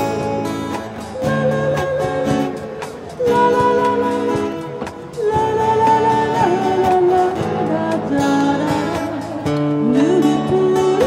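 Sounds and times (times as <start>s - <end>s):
amplified acoustic guitar: 0.0s - 11.0s
woman singing into microphone: 1.0s - 11.0s.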